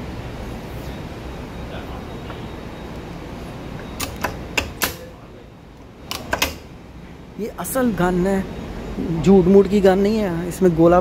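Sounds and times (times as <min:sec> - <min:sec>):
low outdoor background noise: 0:00.0 - 0:11.0
sharp clicks: 0:03.9 - 0:05.1, 0:06.0 - 0:06.7.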